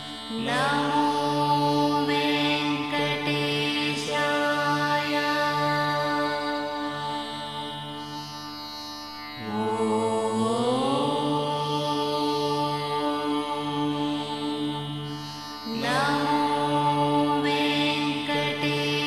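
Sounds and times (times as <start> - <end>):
chanted mantra singing: 0.0 - 19.0
steady drone: 9.4 - 19.0.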